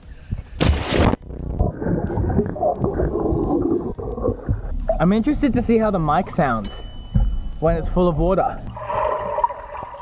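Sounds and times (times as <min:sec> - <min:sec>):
body splashing into pool: 0:00.6 - 0:01.3
muffled underwater bubbling: 0:01.1 - 0:05.1.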